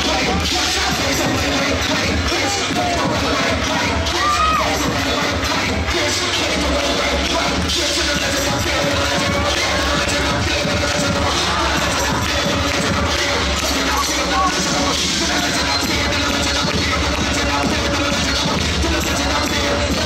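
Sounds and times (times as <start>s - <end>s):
crowd cheering and shouting: 0.0s - 20.0s
loud dance music: 0.0s - 20.0s
person whooping: 4.1s - 4.8s.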